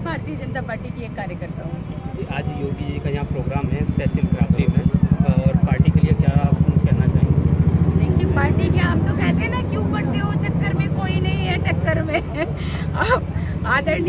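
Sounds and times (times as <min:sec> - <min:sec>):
engine idling: 0:00.0 - 0:14.0
voices: 0:00.0 - 0:14.0.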